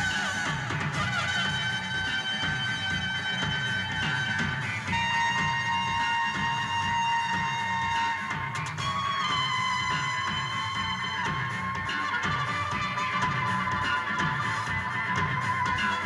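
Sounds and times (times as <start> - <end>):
post-punk band playing live: 0.0 - 16.0.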